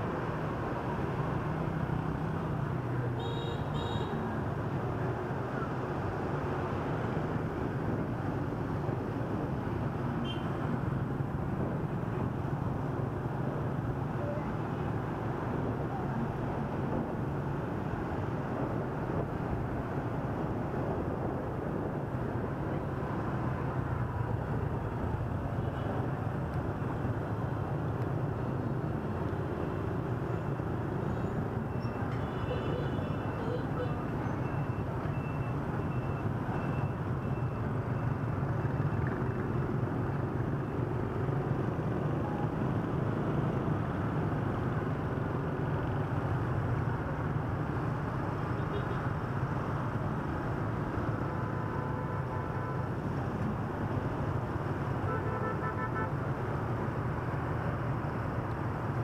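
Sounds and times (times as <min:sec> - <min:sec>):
road and wind noise: 0:00.0 - 0:59.0
street traffic: 0:00.0 - 0:59.0.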